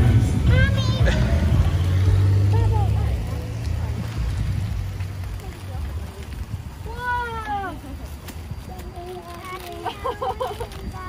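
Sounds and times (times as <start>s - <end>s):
car engine rumble: 0.0s - 11.0s
child calling: 0.5s - 1.4s.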